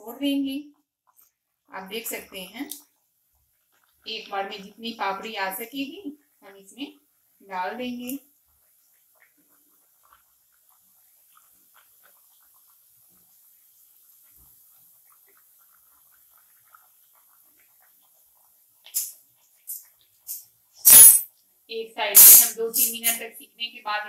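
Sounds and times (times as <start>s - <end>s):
hot oil spitting and crackling: 1.0s - 6.0s, 7.2s - 23.3s.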